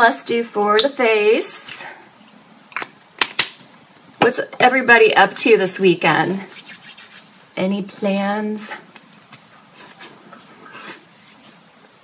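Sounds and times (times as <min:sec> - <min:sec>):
soft rubbing of skin on skin: 0:06.0 - 0:07.6, 0:09.0 - 0:12.0.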